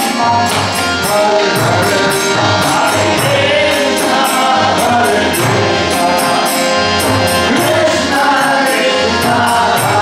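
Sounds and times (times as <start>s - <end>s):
harmonium chords: 0.0s - 10.0s
metallic percussion beat: 0.0s - 10.0s
choir chanting: 1.0s - 10.0s.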